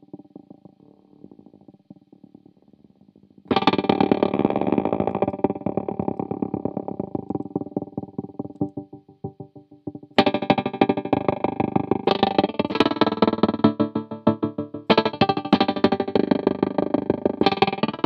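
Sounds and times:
pulsing tremolo electric guitar chords: 0:03.5 - 0:18.0.

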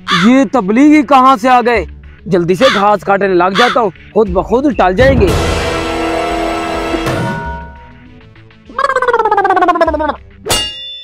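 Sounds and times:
metallic clang: 0:06.8 - 0:08.1.

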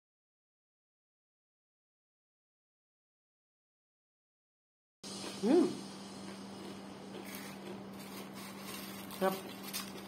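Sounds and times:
steady low hum: 0:05.1 - 0:10.0
chips being chewed: 0:06.6 - 0:10.0.

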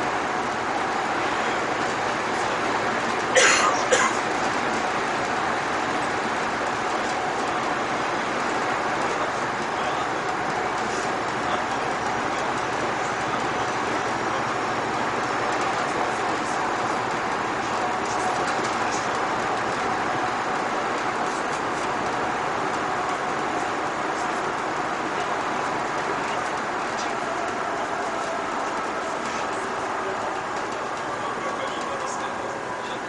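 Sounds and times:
bus engine and tyres running: 0:00.0 - 0:33.0.

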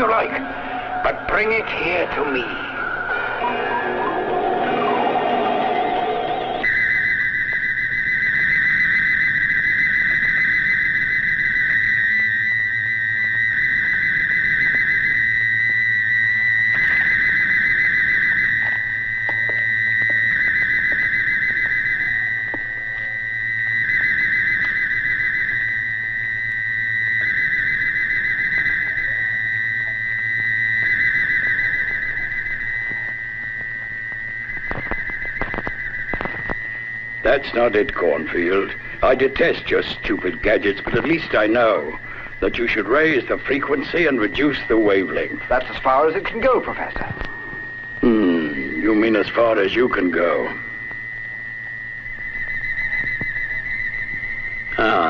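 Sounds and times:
high electronic tone: 0:00.0 - 0:55.0
low hum: 0:00.0 - 0:55.0.

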